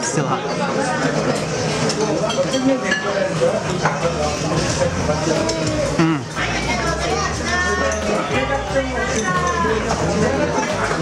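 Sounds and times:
diners talking: 0.7 - 11.0
dishes and cutlery clinking: 1.3 - 11.0.

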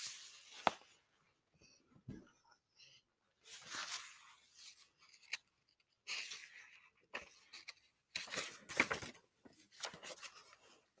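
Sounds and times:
book pages rustling: 0.0 - 1.0, 3.4 - 11.0.

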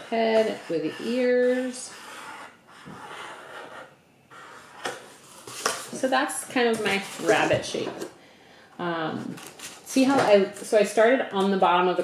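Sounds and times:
marker scratching on cardboard: 0.0 - 4.8
cardboard being handled: 4.9 - 8.0.

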